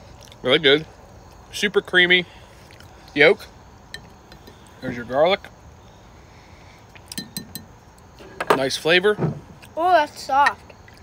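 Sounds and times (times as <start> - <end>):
ringing clinks on glass jar: 7.1 - 7.7.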